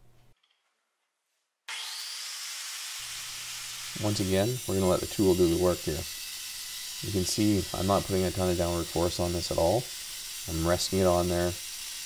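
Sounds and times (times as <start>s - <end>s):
angle grinder whining: 1.7s - 12.0s.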